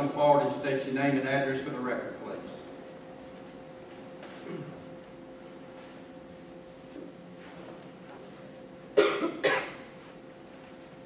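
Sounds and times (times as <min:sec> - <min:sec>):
person coughing: 0:04.4 - 0:04.8, 0:09.0 - 0:09.9.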